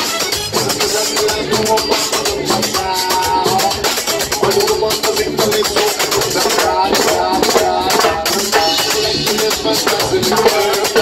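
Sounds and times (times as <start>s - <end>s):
salsa band playing: 0.0s - 11.0s
metal scraper rhythm: 0.6s - 11.0s.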